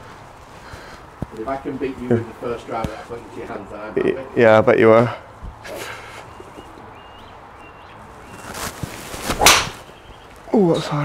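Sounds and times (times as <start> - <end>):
golf club swishing: 8.2 - 10.0
club striking golf ball: 9.3 - 9.9.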